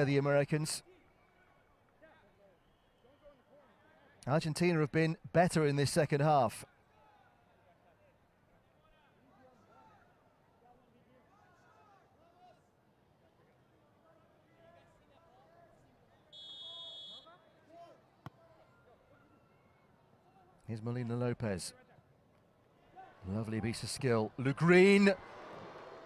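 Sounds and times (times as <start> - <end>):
referee's whistle blast: 16.3 - 17.4
distant voices of players: 21.9 - 26.0.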